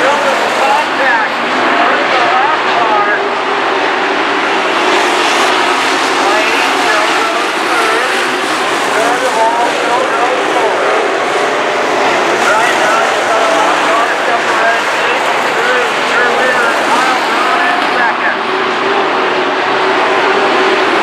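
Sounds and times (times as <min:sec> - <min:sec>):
race car engines revving: 0:00.0 - 0:21.0
voices: 0:00.0 - 0:21.0.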